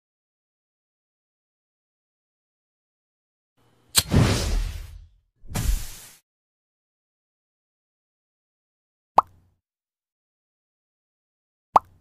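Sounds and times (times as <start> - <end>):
cartoon pop sound effect: 11.8 - 12.0.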